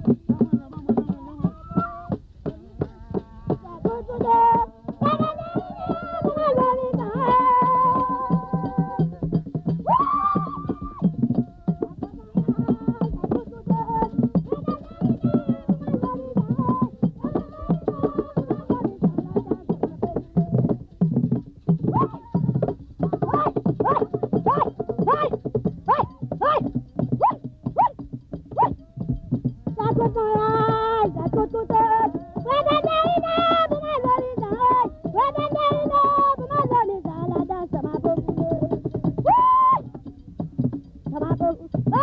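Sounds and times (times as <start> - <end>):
group of voices singing: 0.0 - 21.0, 21.8 - 27.8, 28.6 - 39.2
hand drums beating: 0.0 - 42.0.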